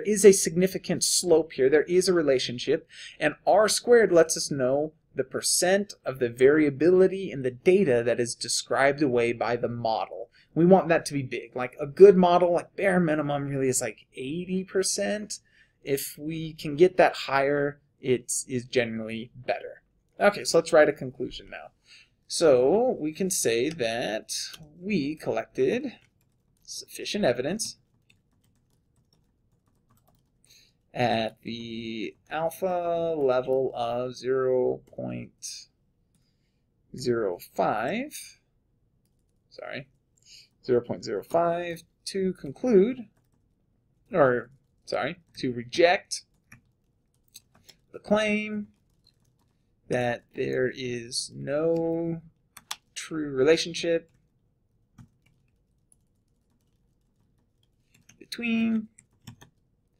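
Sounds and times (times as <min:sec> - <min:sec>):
soft keyboard typing: 0:23.2 - 0:35.4, 0:39.0 - 0:50.7, 0:51.3 - 0:59.9
computer keyboard keystrokes: 0:27.8 - 0:30.5, 0:48.7 - 0:49.6, 0:52.6 - 0:52.9, 0:54.9 - 0:58.2, 0:58.9 - 0:59.6.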